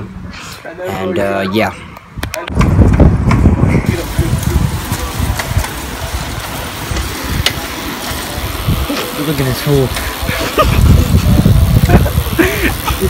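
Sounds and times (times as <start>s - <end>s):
wind buffeting microphone: 1.8s - 13.0s.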